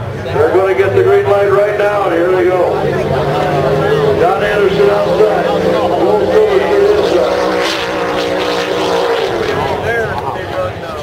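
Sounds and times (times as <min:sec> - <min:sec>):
drag boat engines droning: 0:00.0 - 0:11.0.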